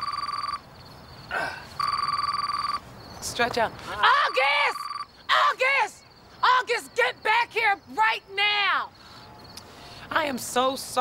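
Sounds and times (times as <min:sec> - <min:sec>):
phone ringing electronic warble: 0:00.0 - 0:00.6, 0:01.8 - 0:02.8, 0:04.3 - 0:05.1.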